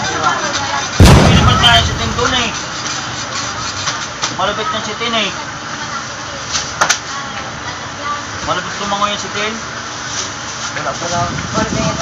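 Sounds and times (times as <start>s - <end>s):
loud sudden thump: 1.0s - 2.6s
low rumble: 1.0s - 2.6s
voices: 1.0s - 2.6s.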